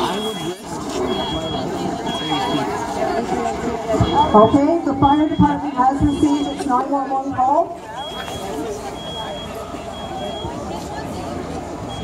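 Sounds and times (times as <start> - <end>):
smoke alarm beeping: 0.0 - 2.7, 4.0 - 6.6, 8.0 - 10.6
crowd chatter: 0.0 - 12.0.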